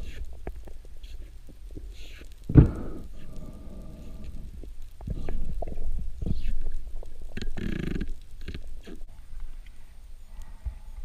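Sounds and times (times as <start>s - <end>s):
muffled underwater rumble: 0.0s - 11.0s.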